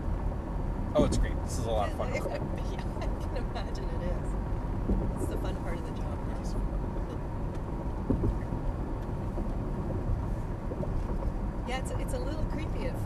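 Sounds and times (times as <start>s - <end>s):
road and tyre rumble in car cabin: 0.0s - 13.0s
brief voice: 1.0s - 2.7s.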